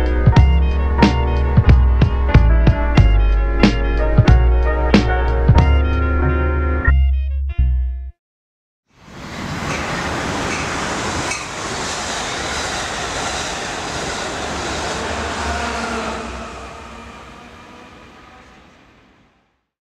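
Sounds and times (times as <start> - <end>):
passenger train passing: 9.0 - 19.7
sharp train clack: 9.1 - 19.2.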